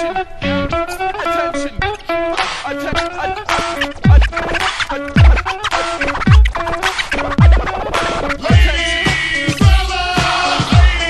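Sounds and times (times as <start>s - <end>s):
electronic hip-hop music: 0.0s - 11.0s
turntable scratching: 0.0s - 11.0s
chopped vocal: 2.4s - 11.0s.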